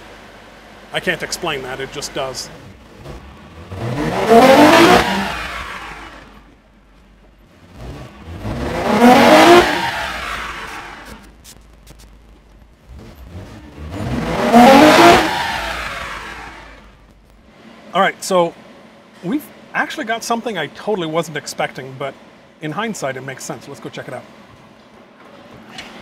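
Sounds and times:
car engine revving hard: 0:00.0 - 0:06.6, 0:07.5 - 0:11.3, 0:12.8 - 0:20.4.

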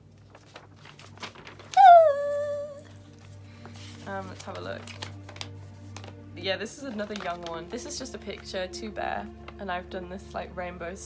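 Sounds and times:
paper rustling: 0:00.0 - 0:08.6
woman squealing: 0:01.8 - 0:02.9.

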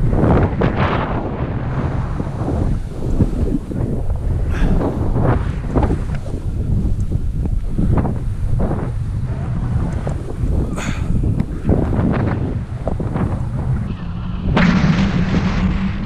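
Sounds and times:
skis carving through snow: 0:00.0 - 0:13.8
wind buffeting microphone: 0:00.0 - 0:16.0.

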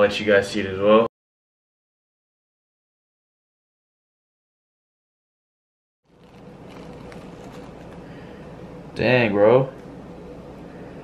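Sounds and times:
faint steady hum: 0:06.1 - 0:11.0.

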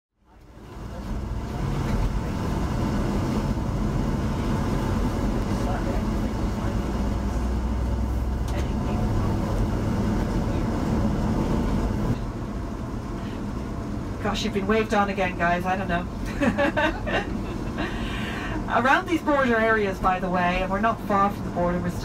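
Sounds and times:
coach engine rumble: 0:00.2 - 0:22.0
tyre and road noise: 0:00.3 - 0:22.0.

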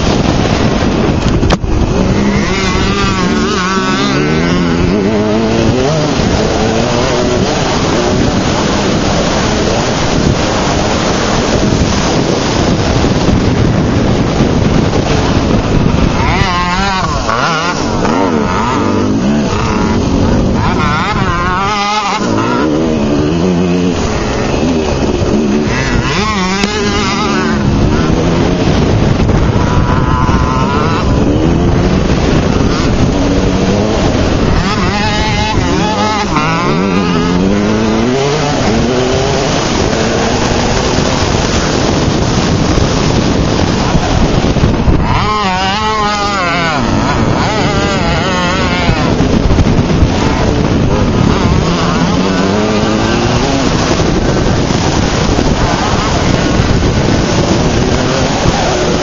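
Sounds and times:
dirt bike engine revving: 0:00.0 - 0:59.0
wind rushing on microphone: 0:00.0 - 0:59.0.

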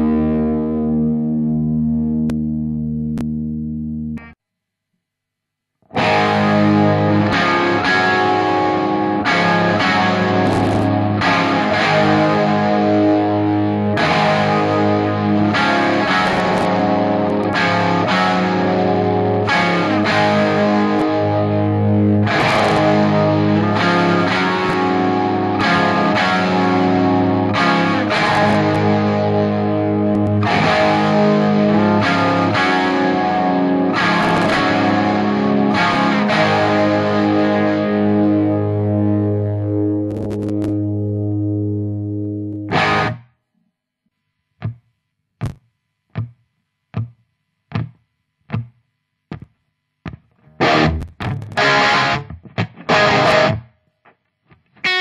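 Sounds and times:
electric guitar rock chord riffs: 0:00.0 - 0:04.4, 0:05.8 - 0:43.3, 0:47.0 - 0:53.8, 0:54.6 - 0:55.0.

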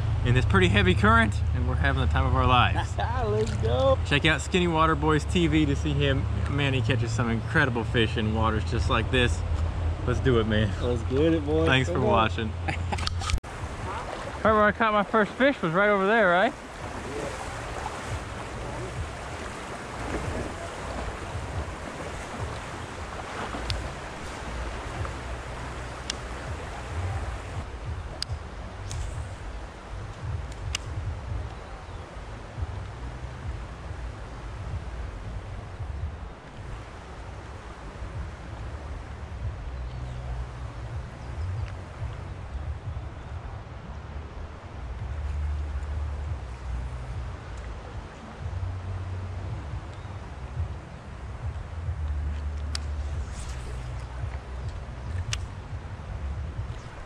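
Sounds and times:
flowing river water: 0:00.0 - 0:57.0
wind buffeting microphone: 0:05.8 - 0:15.5, 0:16.4 - 0:57.0.

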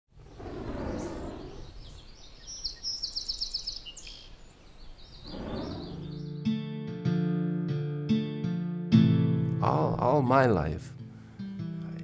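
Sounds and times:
small birds chirping: 0:00.1 - 0:06.5.

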